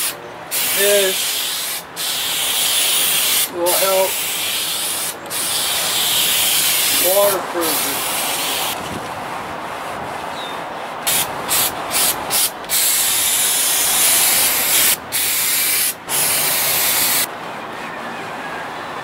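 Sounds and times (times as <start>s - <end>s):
aerosol spray can hissing: 0.0s - 8.8s, 11.1s - 17.3s.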